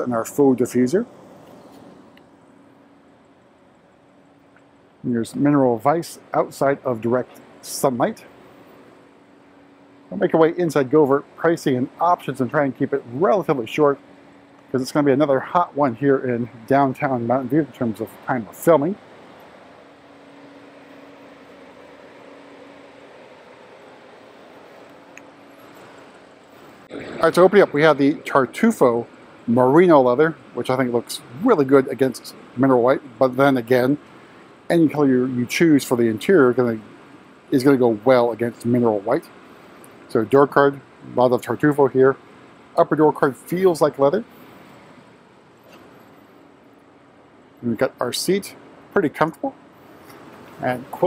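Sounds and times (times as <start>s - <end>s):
faint low hum: 0.0s - 51.0s
open-air ambient hiss: 0.0s - 51.0s
outdoor background noise: 0.0s - 51.0s.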